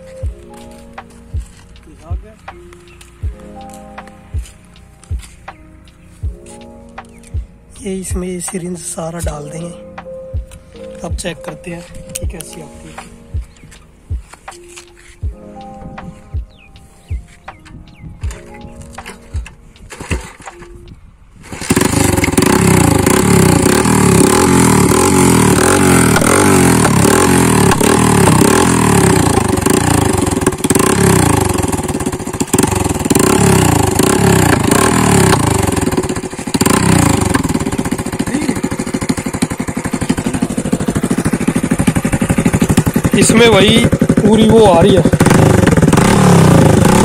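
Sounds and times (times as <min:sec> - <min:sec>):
motorcycle engine running: 0:18.2 - 0:20.6, 0:21.4 - 0:47.0.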